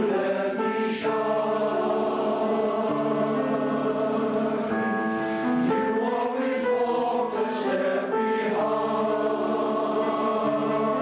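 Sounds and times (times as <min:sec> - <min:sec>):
male choir singing in harmony: 0:00.0 - 0:11.0.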